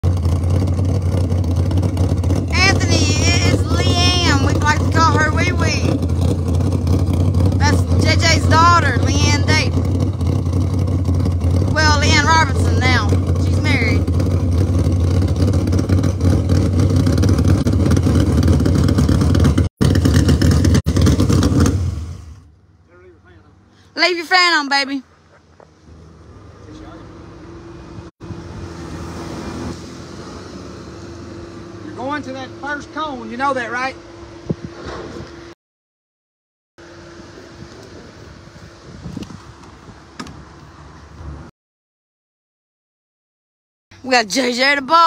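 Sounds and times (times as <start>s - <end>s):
car engine idling loudly: 0.0s - 23.7s.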